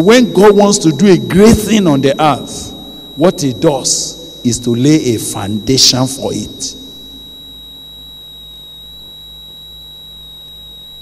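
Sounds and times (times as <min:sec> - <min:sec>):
high-pitched electronic whine: 0:00.0 - 0:11.0
low electrical hum: 0:00.0 - 0:11.0.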